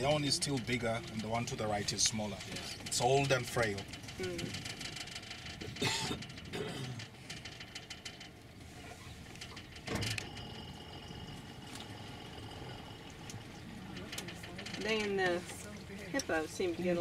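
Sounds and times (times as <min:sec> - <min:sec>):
boat engine idling: 0:00.0 - 0:17.0
faint high whine: 0:09.9 - 0:13.8.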